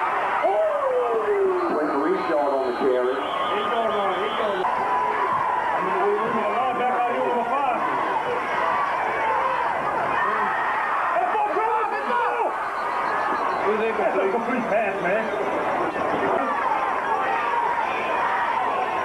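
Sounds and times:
people talking and calling out: 0:00.0 - 0:19.0.

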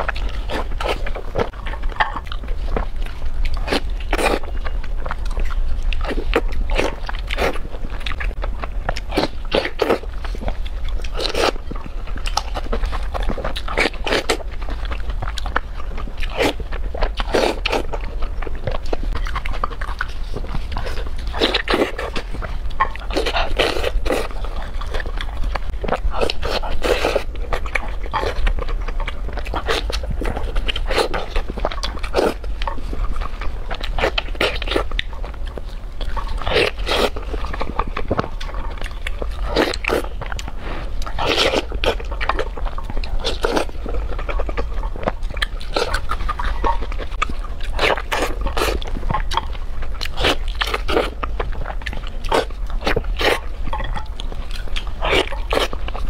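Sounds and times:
person chewing crunchy food: 0:00.0 - 0:56.0.

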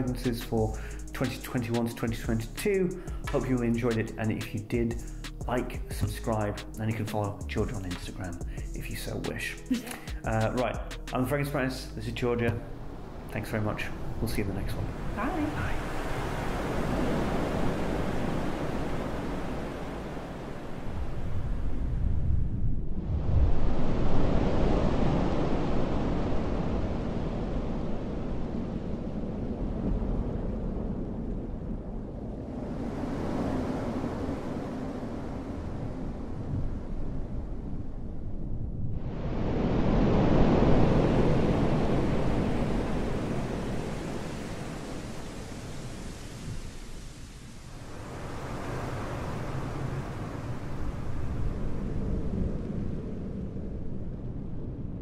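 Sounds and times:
surf rushing: 0:12.3 - 0:22.0, 0:39.0 - 0:53.3
wind: 0:14.8 - 0:55.0.

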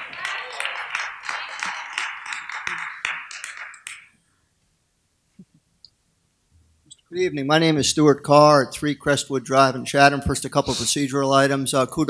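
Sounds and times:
audience applauding: 0:00.0 - 0:04.2.

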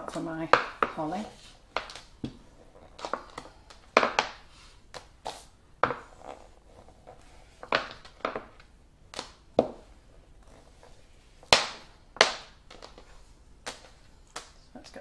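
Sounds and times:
rolling pin rolling paste: 0:00.0 - 0:14.1.

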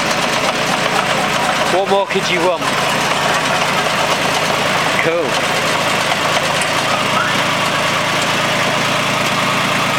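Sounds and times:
tractor diesel engine running: 0:00.0 - 0:09.9.

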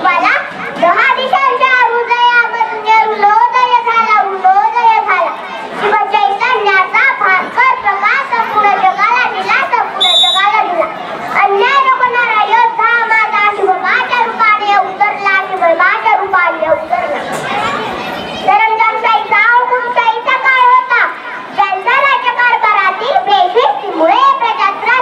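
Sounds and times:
girl giving speech into microphone: 0:00.0 - 0:25.0.

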